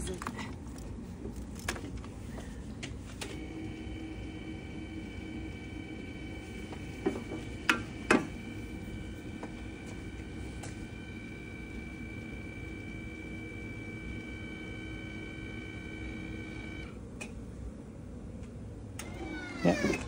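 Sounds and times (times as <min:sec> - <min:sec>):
electric motor whining: 0:03.4 - 0:16.9.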